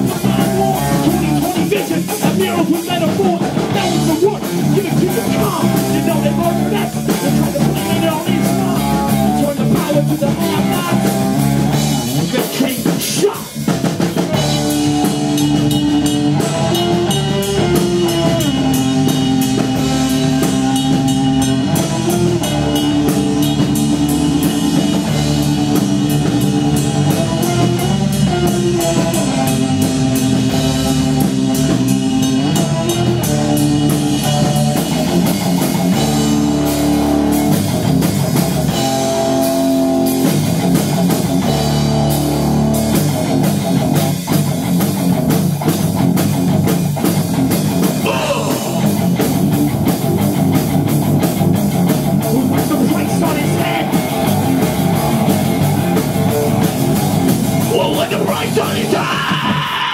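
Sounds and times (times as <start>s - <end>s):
bass guitar: 0.0s - 59.9s
driving drum beat: 0.0s - 59.9s
electric guitar riff: 0.0s - 59.9s.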